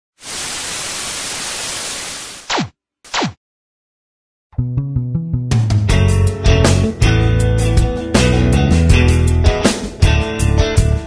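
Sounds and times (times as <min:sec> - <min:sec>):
television static hiss: 0:00.2 - 0:02.4.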